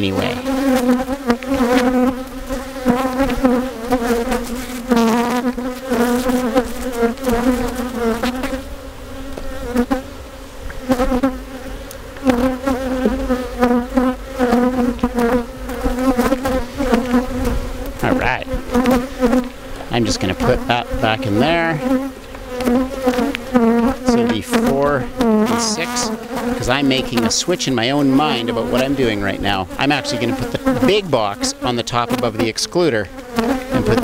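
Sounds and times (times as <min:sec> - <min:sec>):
bees buzzing: 0:00.0 - 0:34.0.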